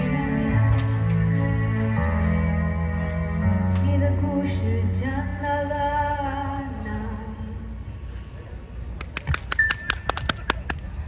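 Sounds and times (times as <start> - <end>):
audience clapping: 9.0 - 10.9.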